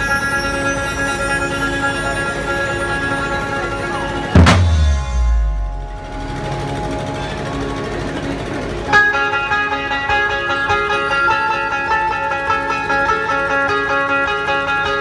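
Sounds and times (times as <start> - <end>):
amplified plucked-string melody: 0.0 - 15.0
band music over loudspeakers: 0.0 - 15.0
drums: 0.0 - 15.0.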